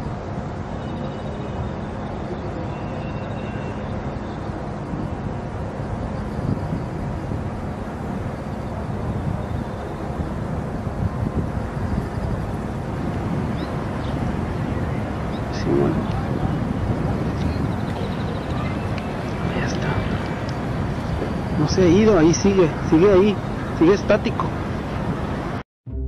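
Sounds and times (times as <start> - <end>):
distant traffic: 0.0 - 25.6
wind: 0.0 - 25.6.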